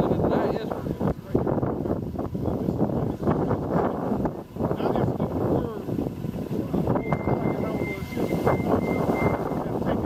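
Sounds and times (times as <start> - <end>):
city street traffic: 0.0 - 10.0
wind buffeting microphone: 0.0 - 10.0.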